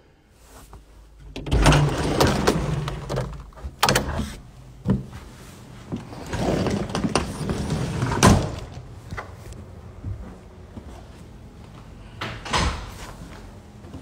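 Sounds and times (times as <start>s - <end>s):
elevator running with rumble: 1.2s - 14.0s.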